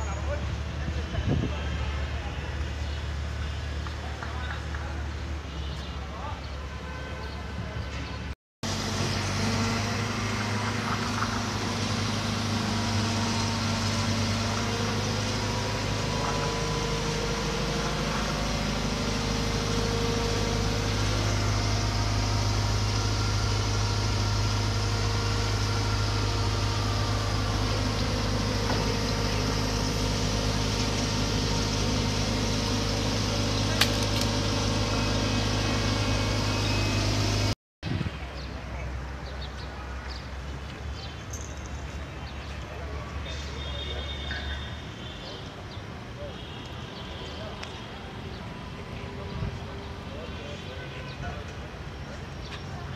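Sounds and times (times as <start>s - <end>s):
heavy diesel engine running: 8.6s - 52.9s.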